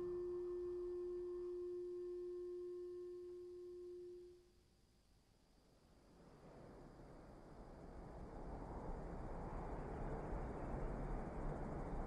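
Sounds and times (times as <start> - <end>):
long ringing tone: 0.0 - 4.5.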